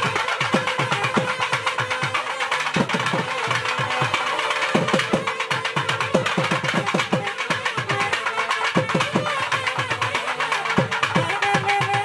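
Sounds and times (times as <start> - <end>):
rapid drum strokes: 0.0 - 12.0.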